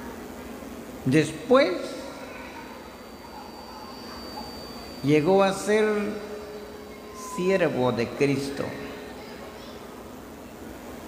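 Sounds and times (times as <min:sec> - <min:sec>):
faint high-pitched whine: 0:00.0 - 0:11.0
seated crowd ambience: 0:00.0 - 0:11.0.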